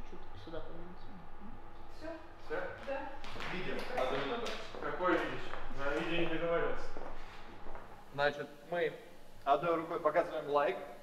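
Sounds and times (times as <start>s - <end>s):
people talking: 0.0s - 7.0s, 8.2s - 10.9s.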